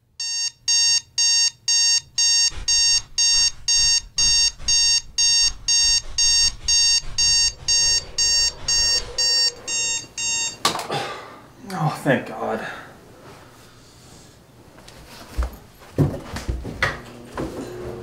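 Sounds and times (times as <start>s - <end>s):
alarm clock beeping: 0.2s - 10.7s.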